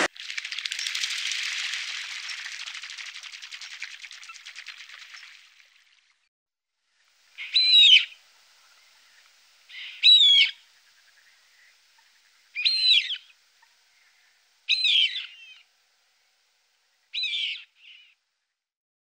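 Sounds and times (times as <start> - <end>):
bird calling: 7.3 - 15.7, 17.0 - 18.2.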